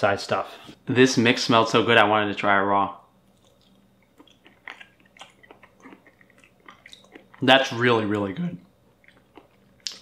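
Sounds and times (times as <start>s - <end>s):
person chewing wetly: 3.3s - 7.6s, 8.8s - 10.0s.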